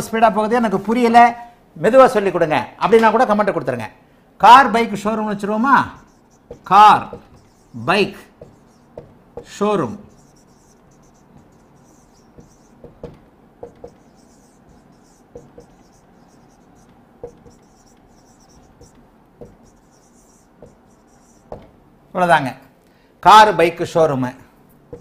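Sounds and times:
marker scratching on whiteboard: 5.2 - 21.8
marker tip tapping board: 5.9 - 21.8.

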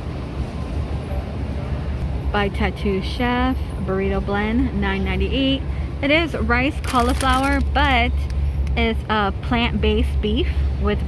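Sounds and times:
store background rumble: 0.0 - 11.0.

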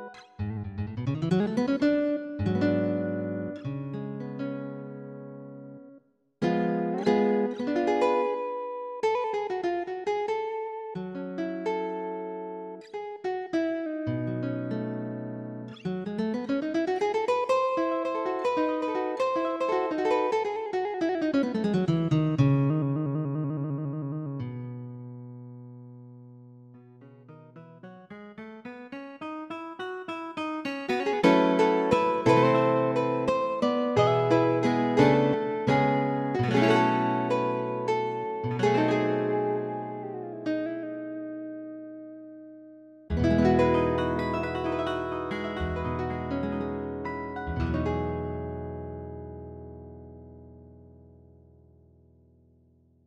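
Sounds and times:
plucked guitar notes: 0.0 - 52.1.

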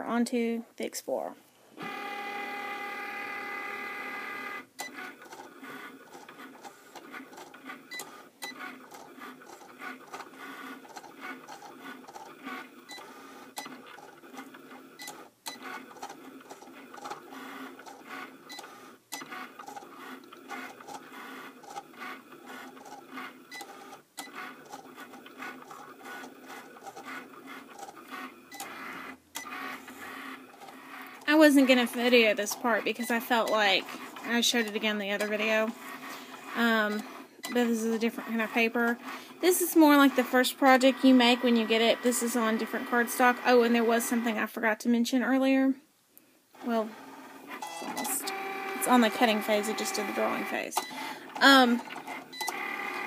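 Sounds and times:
cutting machine motors whirring: 1.8 - 44.4, 46.6 - 53.0.

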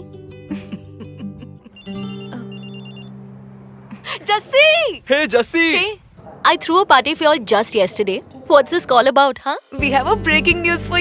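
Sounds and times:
short high electronic beeps: 1.8 - 3.2.

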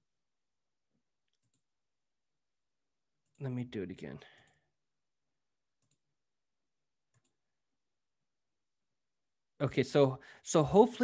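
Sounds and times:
computer mouse clicks: 1.3 - 1.7, 5.8 - 6.0, 7.1 - 7.4.

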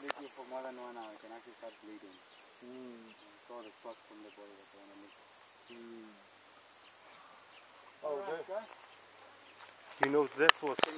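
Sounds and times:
high bird chirps: 0.0 - 10.9.

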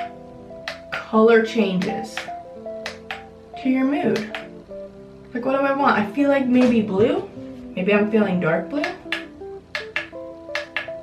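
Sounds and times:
soft picked background music: 0.0 - 11.0.

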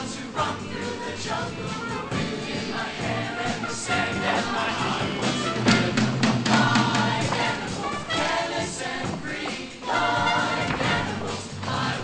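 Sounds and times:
choir singing in harmony: 0.0 - 12.0
band accompaniment with steady beat: 0.1 - 12.0.

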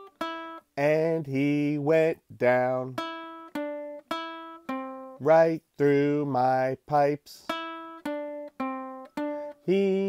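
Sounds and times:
ukulele chords strummed: 0.0 - 10.0.

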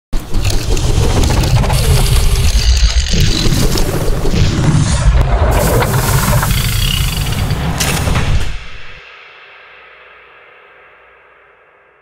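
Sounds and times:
loud soundtrack with deep rumble: 0.2 - 9.2.

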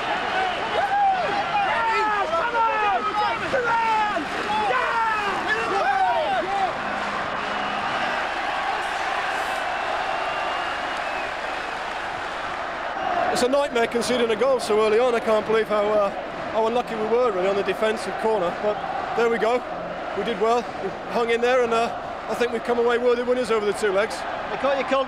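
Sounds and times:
stadium crowd cheering and chanting: 0.0 - 25.0.

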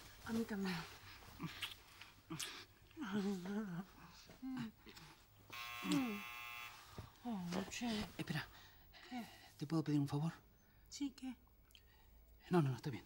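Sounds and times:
steady buzzing tone: 5.5 - 6.9.

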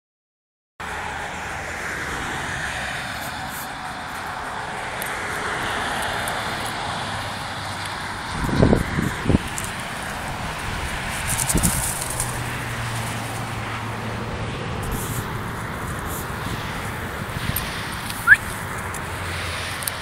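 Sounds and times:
motorway traffic: 0.8 - 20.0.

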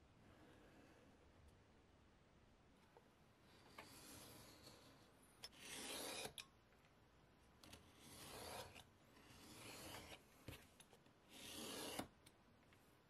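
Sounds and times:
knife scraping through leather: 5.5 - 6.4, 8.0 - 10.2, 11.3 - 12.1.

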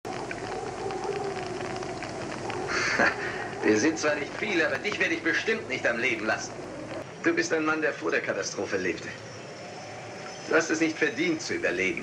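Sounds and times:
steady hiss: 0.1 - 12.0.

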